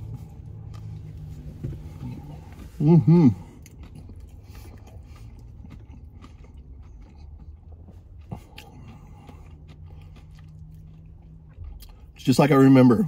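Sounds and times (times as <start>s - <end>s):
person chewing: 0.0s - 12.2s
steady low hum: 0.0s - 13.0s.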